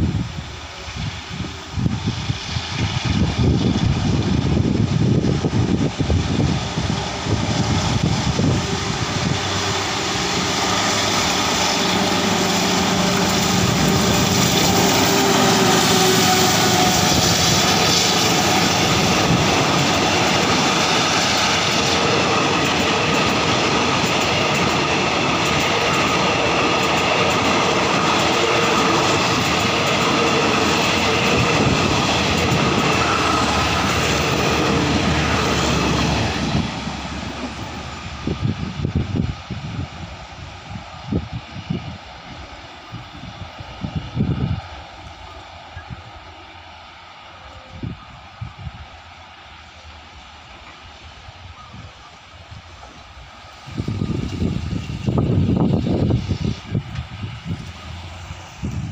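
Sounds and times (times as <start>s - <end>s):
diesel locomotive passing: 0.0s - 58.9s
train wheels clattering on rails: 2.6s - 38.3s.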